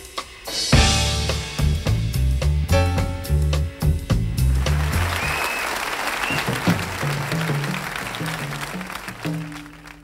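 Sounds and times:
jazz band playing: 0.0 - 10.0
upright bass notes: 0.8 - 5.4.

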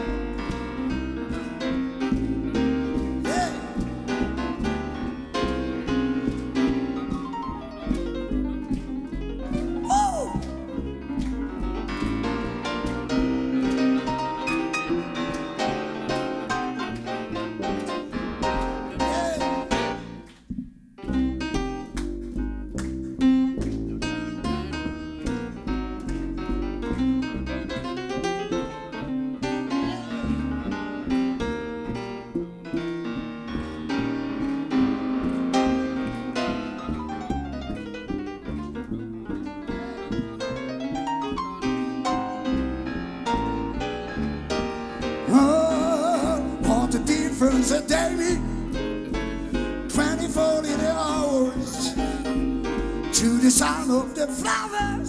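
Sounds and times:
double bass low notes: 0.0 - 55.0
jazz piano solo: 0.0 - 55.0.

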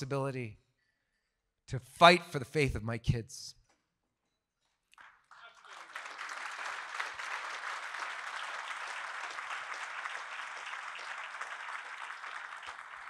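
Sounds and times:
audience applauding: 4.9 - 13.0.

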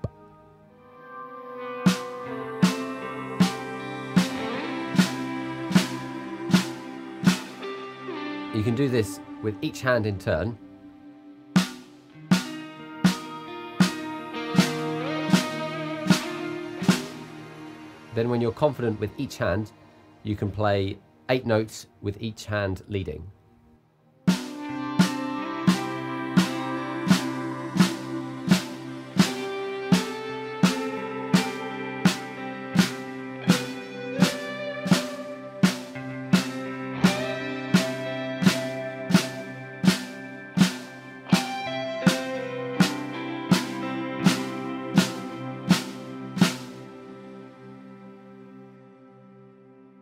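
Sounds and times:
backing track chords: 0.0 - 22.0, 23.1 - 50.0.

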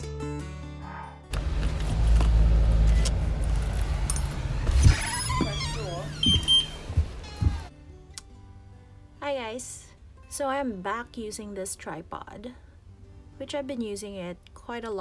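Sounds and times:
door thuds: 4.6 - 7.7.

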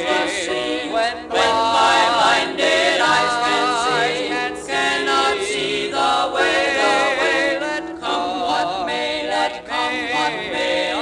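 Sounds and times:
male quartet singing a hymn: 0.0 - 11.0.

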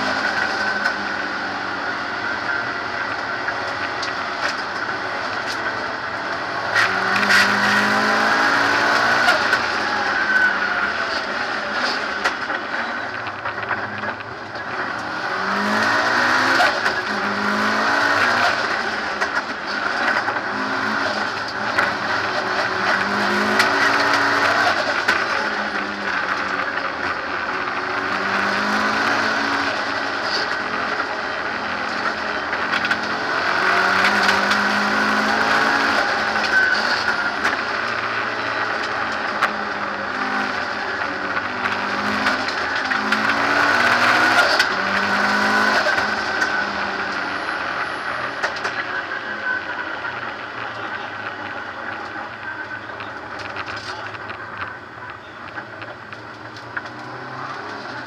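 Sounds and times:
race car engine accelerating: 0.0 - 58.0
road and wind noise: 0.0 - 58.0.

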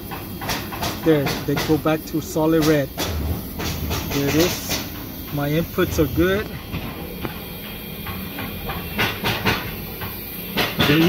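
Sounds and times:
industrial machinery hum and hiss: 0.0 - 11.0.

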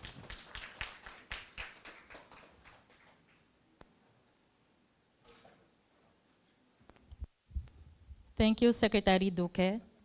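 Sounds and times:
faint sparse applause: 0.0 - 3.4.

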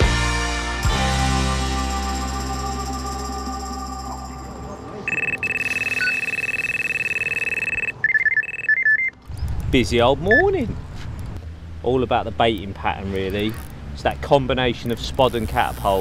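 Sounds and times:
background music: 0.0 - 4.7
rapid broken bleeps: 5.1 - 9.2, 10.2 - 10.6.

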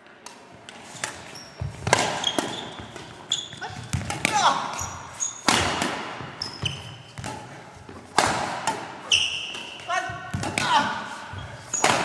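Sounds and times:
racket striking shuttlecock: 0.2 - 12.0
sneakers squeaking on floor: 0.8 - 12.0.

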